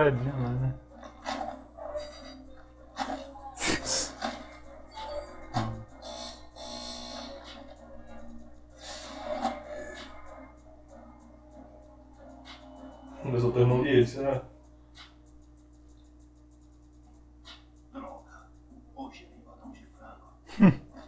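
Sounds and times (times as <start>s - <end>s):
cartoon soundtrack music: 0.0s - 15.6s.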